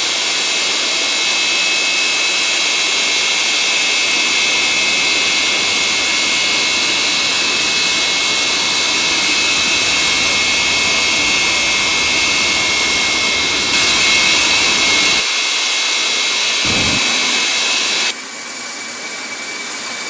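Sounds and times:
high-pitched jet turbine whine: 0.0 - 20.0
constant rushing hiss: 3.7 - 15.2.

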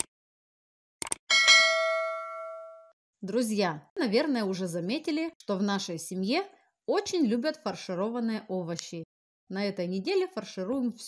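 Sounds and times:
bright bell ding: 1.3 - 3.0.

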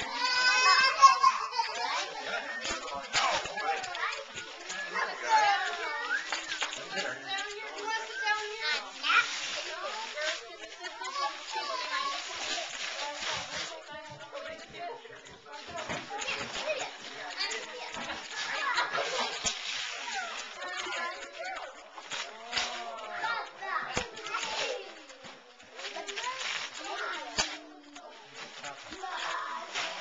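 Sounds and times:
wrapping paper crinkling and tearing: 0.0 - 14.6, 15.5 - 30.0
children babbling and squealing: 0.0 - 15.0, 15.7 - 30.0.

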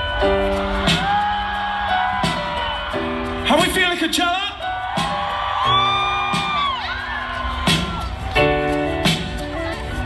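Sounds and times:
crowd whooping: 0.0 - 3.4, 4.6 - 9.1.

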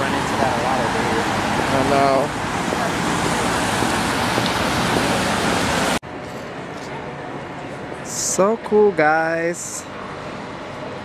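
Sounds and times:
rain on wet pavement: 0.0 - 6.0.

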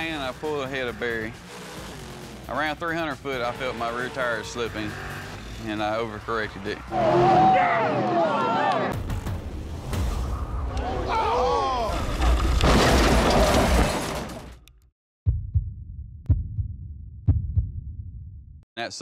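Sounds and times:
car engine and road noise: 0.0 - 8.8
driver yelling: 6.8 - 8.9.

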